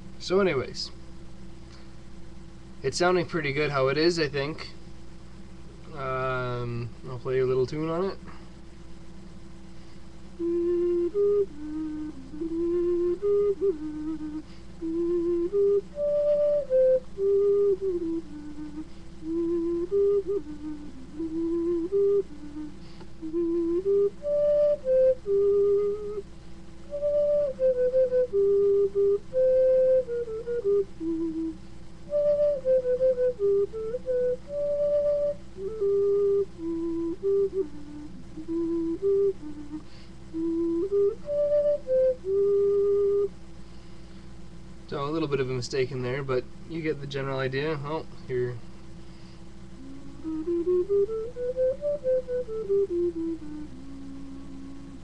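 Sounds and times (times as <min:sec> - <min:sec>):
bass ocarina playing tune: 0:10.4 - 0:43.4, 0:47.6 - 0:55.0.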